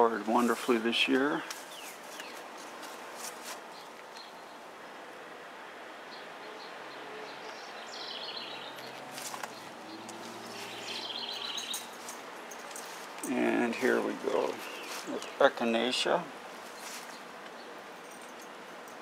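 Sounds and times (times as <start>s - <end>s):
outdoor background noise: 0.0s - 19.0s
songbird trills: 6.1s - 13.0s, 14.5s - 15.5s.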